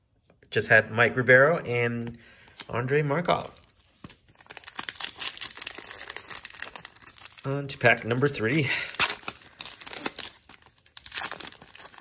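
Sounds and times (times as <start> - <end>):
foil wrapper crinkling and tearing: 4.0 - 12.0.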